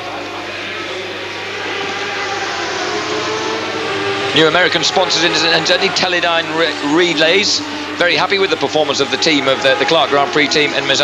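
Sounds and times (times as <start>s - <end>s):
racing engines droning: 0.0s - 11.0s.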